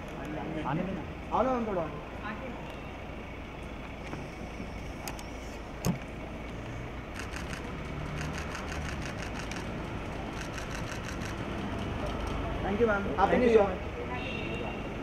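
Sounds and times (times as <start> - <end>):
camera shutter clicks: 7.2 - 9.7, 10.4 - 11.4.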